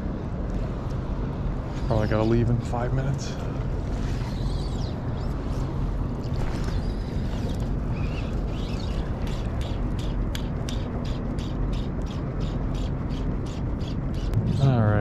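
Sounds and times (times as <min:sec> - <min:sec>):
wind: 0:00.0 - 0:15.0
water noise: 0:03.4 - 0:15.0.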